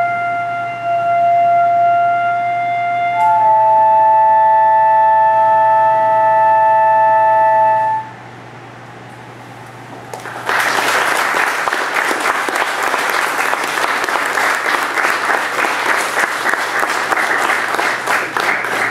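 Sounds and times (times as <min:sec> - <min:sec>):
flute trio chord: 0:00.0 - 0:08.4
audience applause: 0:10.1 - 0:18.9.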